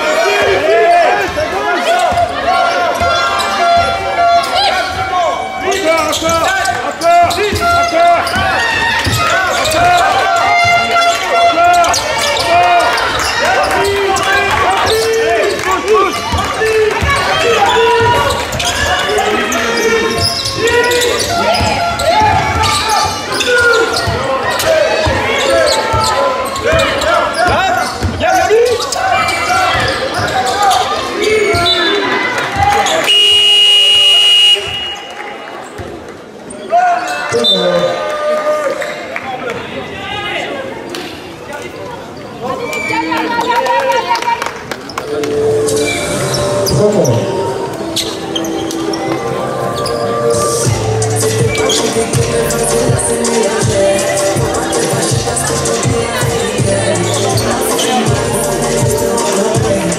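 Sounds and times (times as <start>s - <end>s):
voices shouting: 0.0s - 35.6s, 45.1s - 59.9s
sneakers squeaking: 0.0s - 37.9s, 44.8s - 59.9s.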